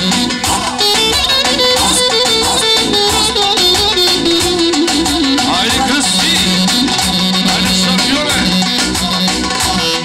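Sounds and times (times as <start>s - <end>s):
live band folk dance music: 0.0s - 10.0s.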